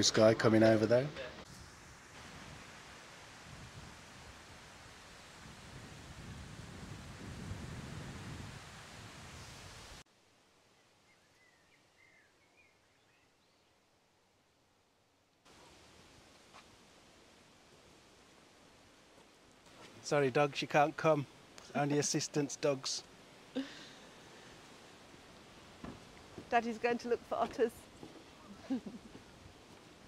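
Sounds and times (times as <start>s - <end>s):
low outdoor hiss: 0.0s - 30.0s
wind gusting over microphone: 1.4s - 10.0s
faint bird chirps: 10.7s - 13.8s.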